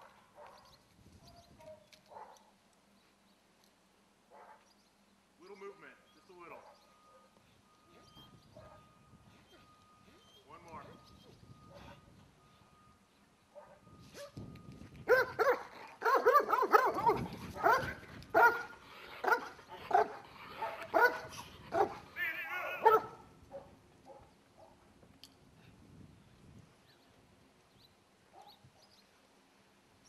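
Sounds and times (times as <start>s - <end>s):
dog barking: 0.0s - 0.6s, 1.6s - 2.5s, 4.3s - 4.7s, 6.5s - 7.4s, 8.6s - 8.9s, 13.6s - 14.4s, 15.1s - 22.0s, 22.8s - 24.8s, 28.3s - 28.6s
dog yelping: 15.1s - 22.1s, 22.7s - 23.2s.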